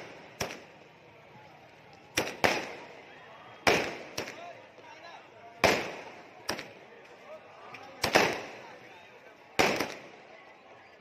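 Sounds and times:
fireworks bangs: 0.0 - 1.0, 2.1 - 3.0, 3.6 - 4.8, 5.6 - 6.8, 8.0 - 8.9, 9.6 - 10.2.

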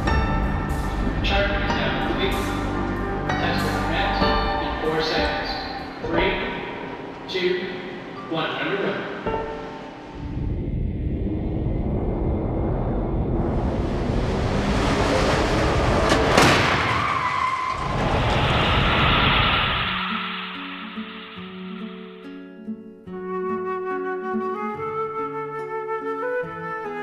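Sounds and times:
flute music: 0.0 - 8.5, 22.2 - 27.0
car rushing down track: 11.1 - 21.4
sharp crack of crash impact: 15.9 - 22.2.

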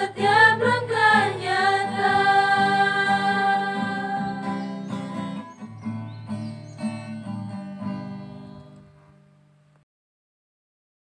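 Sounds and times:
acoustic guitar strumming: 0.0 - 9.4.

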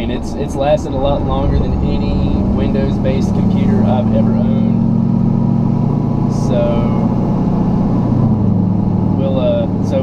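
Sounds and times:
diesel engine drone inside cab: 0.0 - 10.0.

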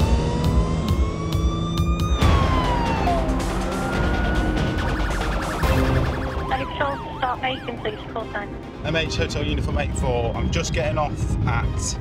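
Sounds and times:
police siren wailing: 0.0 - 8.7
background music with steady beat: 0.0 - 12.0.

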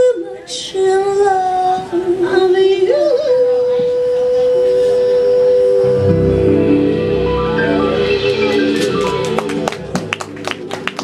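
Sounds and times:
woman singing lower line: 0.0 - 6.5.

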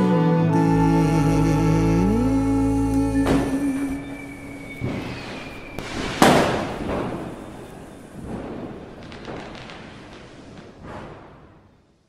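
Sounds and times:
held musical tone: 0.0 - 5.8.

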